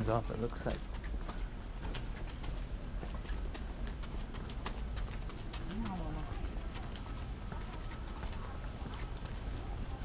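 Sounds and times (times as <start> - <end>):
footsteps on hard walkway: 0.0 - 10.0.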